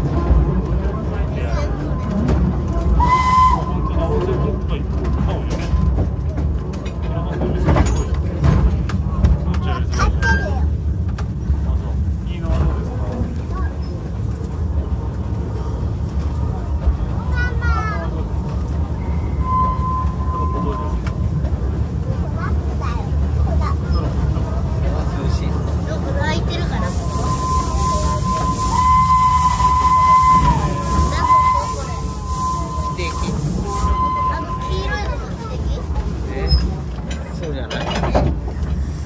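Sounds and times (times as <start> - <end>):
train wheels rumbling: 0.0 - 39.0.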